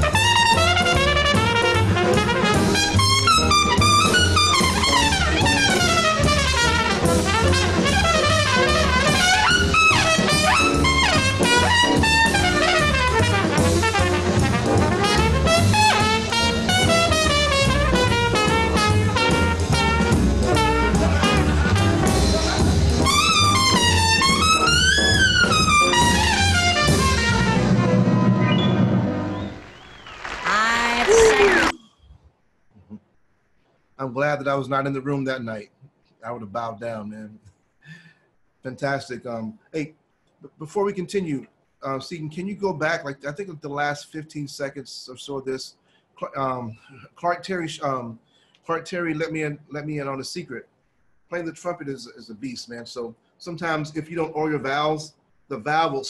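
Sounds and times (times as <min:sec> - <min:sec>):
jazz trumpet solo: 0:00.0 - 0:29.6
bass and drums: 0:00.0 - 0:30.0.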